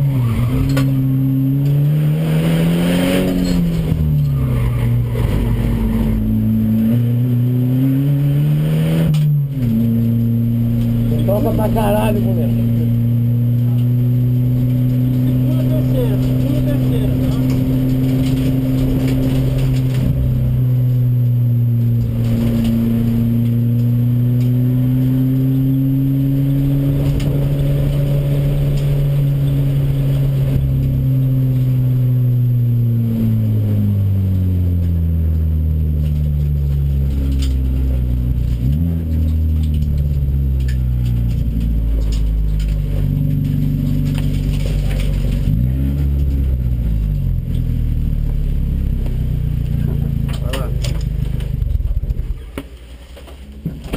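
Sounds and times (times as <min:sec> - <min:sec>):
race car engine revving: 0:00.0 - 0:53.9.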